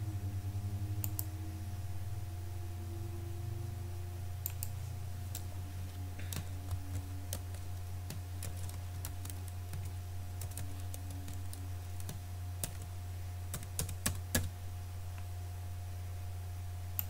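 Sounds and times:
steady low hum: 0.0 - 17.0
computer keyboard typing: 4.5 - 12.9, 13.5 - 14.6.

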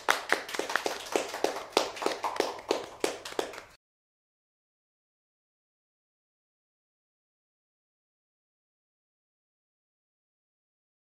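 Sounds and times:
people clapping hands: 0.0 - 3.8.

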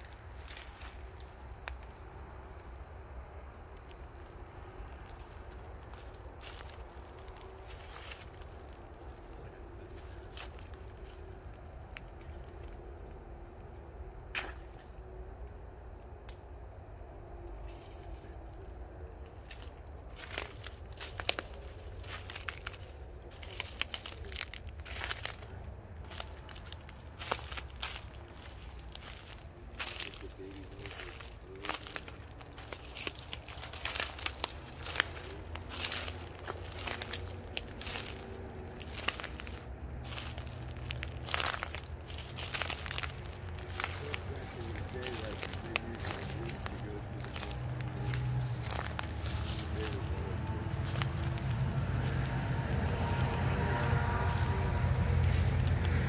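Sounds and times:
footsteps crunching dry leaves: 0.0 - 2.1, 3.8 - 13.1, 19.2 - 56.0
low steady rumble: 45.6 - 56.0.

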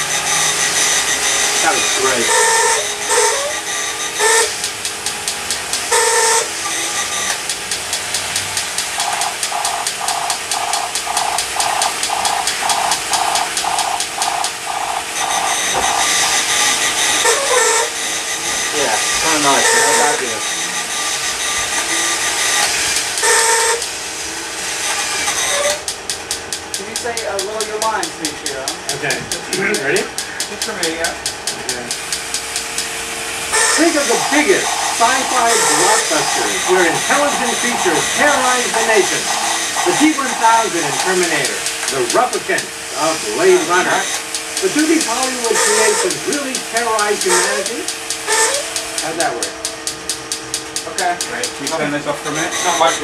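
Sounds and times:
electronic beeps: 0.0 - 23.9, 24.8 - 25.9, 33.5 - 42.0, 43.4 - 50.9, 52.2 - 53.0
wavering siren-like tones: 0.0 - 26.0, 32.4 - 53.0
toy robots mechanical clatter: 7.3 - 17.9, 24.9 - 42.6, 43.4 - 52.9.

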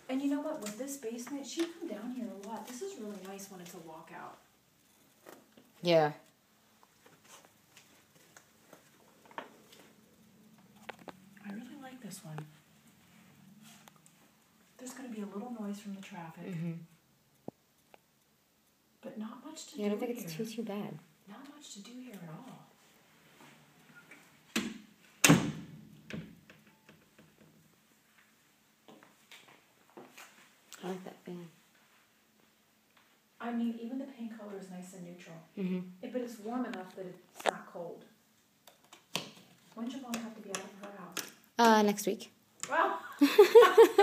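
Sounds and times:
faint clicks and taps: 17.3 - 18.8, 38.6 - 41.8.

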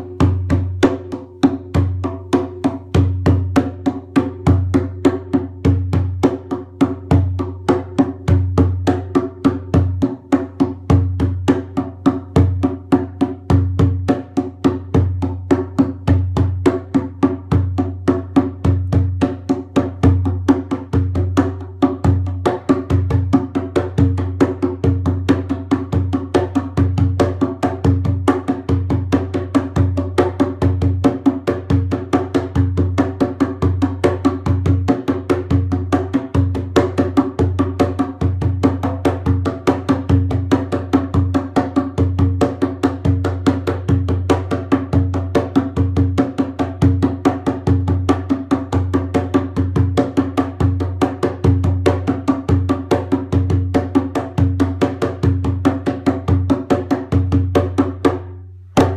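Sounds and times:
djembe played with hands: 0.0 - 58.9.

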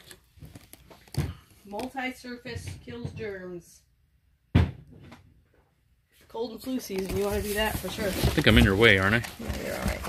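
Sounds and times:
sharp thump: 4.5 - 5.2.

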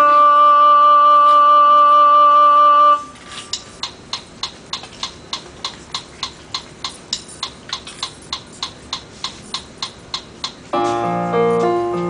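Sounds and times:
metronome clicks: 3.5 - 10.9.

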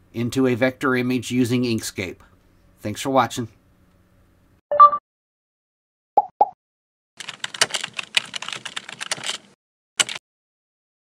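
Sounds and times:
computer keyboard typing: 7.2 - 10.2.

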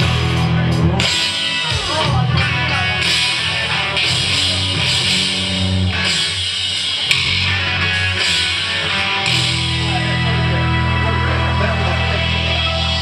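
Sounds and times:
electric guitar: 0.0 - 13.0
keyboards: 0.0 - 13.0.

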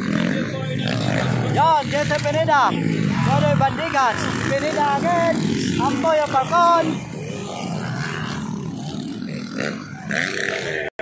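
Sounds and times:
dirt bike engines: 0.0 - 11.0.

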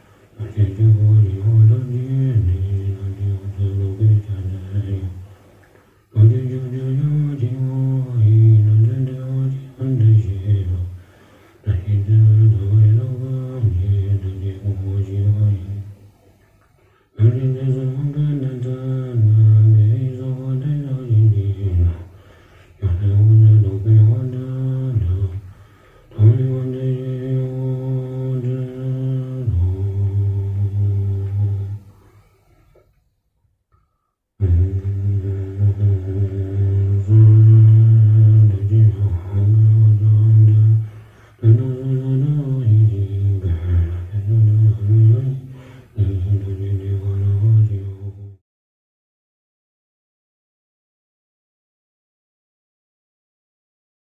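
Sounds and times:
deep voice chanting: 0.0 - 16.5, 17.1 - 33.0, 33.7 - 48.4.

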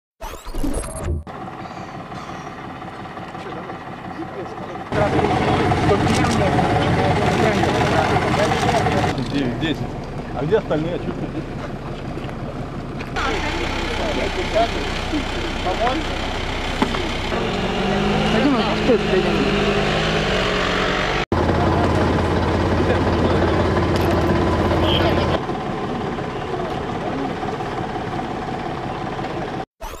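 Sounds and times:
vehicle engine running: 1.2 - 29.7
indistinct voices: 2.0 - 29.6.

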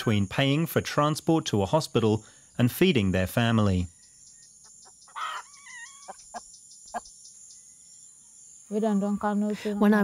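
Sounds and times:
crickets chirring: 0.0 - 10.0
chicken squawking: 5.1 - 6.4.

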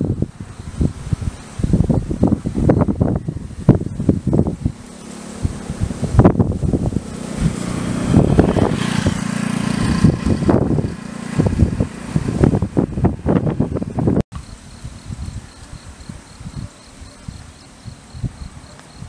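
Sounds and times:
low engine hum: 0.0 - 14.2
wind buffeting microphone: 0.0 - 19.0
faint pulsing insect trill: 14.4 - 19.0.

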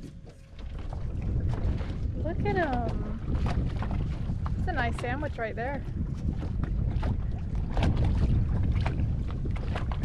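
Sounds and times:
wind rumbling on microphone: 0.0 - 10.0
fish splashing and knocking: 6.5 - 10.0.

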